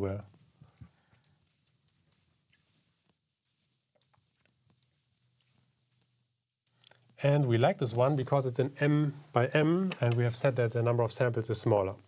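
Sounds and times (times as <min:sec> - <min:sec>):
marker pen squeaking on glass: 0:00.0 - 0:02.7, 0:03.4 - 0:06.0, 0:06.6 - 0:07.2.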